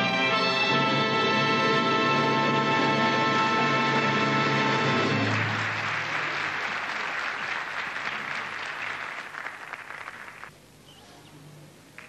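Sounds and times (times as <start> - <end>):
audience applause: 4.0 - 10.5.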